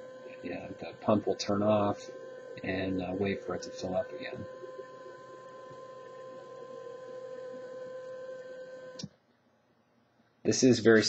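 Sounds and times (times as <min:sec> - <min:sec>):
water pump humming: 0:00.0 - 0:09.1.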